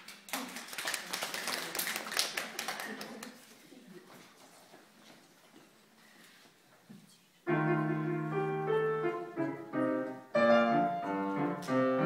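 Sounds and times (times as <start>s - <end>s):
audience applauding: 0.0s - 3.4s.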